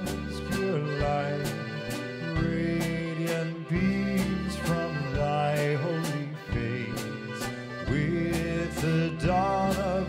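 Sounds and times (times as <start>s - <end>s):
accordion chords: 0.0s - 10.0s
polka band playing: 0.0s - 10.0s.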